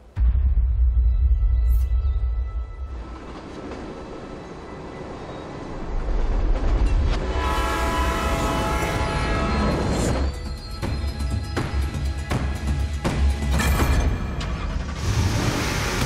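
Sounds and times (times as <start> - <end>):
train rumbling: 2.2 - 16.0
train horn chord: 7.2 - 10.1.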